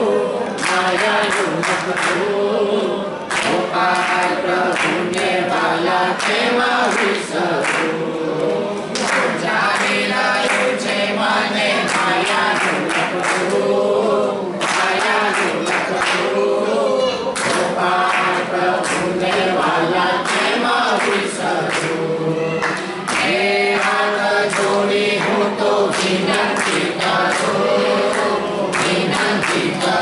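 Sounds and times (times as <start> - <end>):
women singing together: 0.0 - 30.0
hand-clapping: 0.6 - 2.4, 3.2 - 13.8, 14.6 - 16.5, 17.3 - 30.0.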